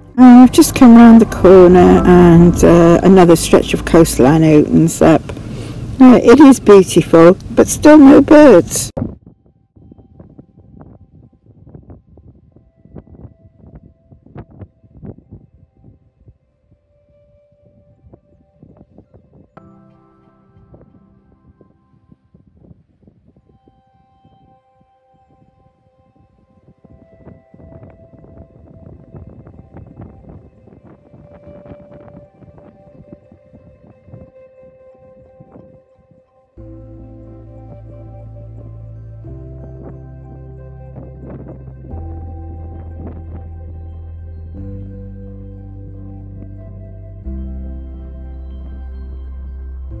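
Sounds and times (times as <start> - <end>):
quiet music of long held notes: 0.0 - 50.0.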